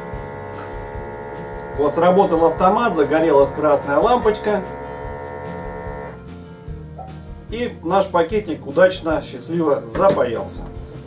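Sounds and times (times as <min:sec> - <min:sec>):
vacuum sealer pump humming: 0:00.0 - 0:06.2.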